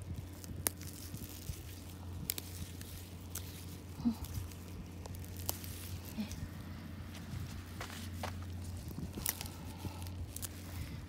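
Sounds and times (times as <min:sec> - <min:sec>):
rustling through leafy plants: 0:00.0 - 0:11.0
steady low hum: 0:00.0 - 0:11.0.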